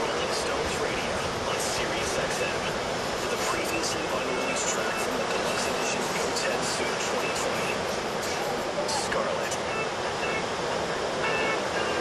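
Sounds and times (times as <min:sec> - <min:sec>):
faint distant voices: 0:00.0 - 0:12.0
surf breaking on beach: 0:00.0 - 0:12.0.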